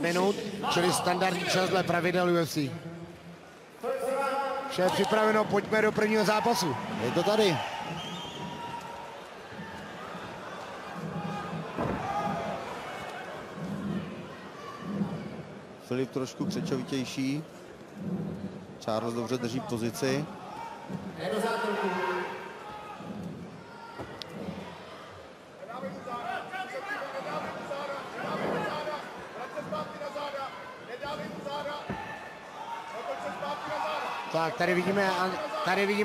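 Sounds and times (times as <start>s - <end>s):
crowd murmur: 6.6s - 18.8s.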